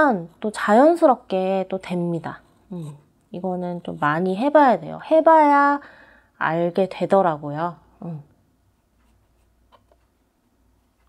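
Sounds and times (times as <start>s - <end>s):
pencil scratching on paper: 8.8s - 10.1s.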